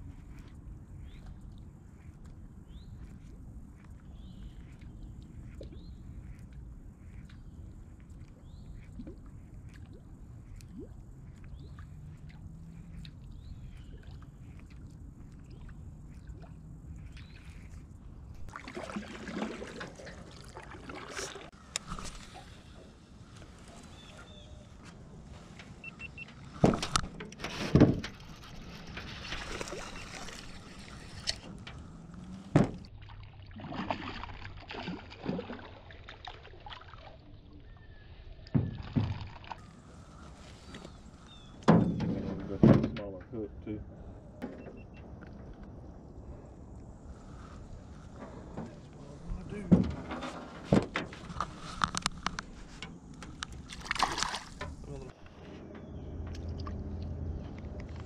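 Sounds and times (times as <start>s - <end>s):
water splashing against boat: 4.0s - 43.8s, 44.4s - 55.4s.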